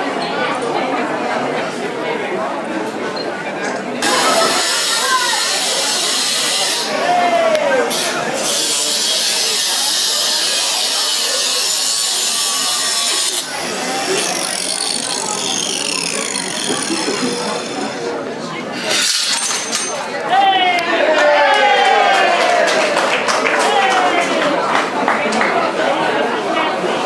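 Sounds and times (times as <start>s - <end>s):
angle grinder cutting chain: 7.9s - 18.1s, 18.7s - 20.2s.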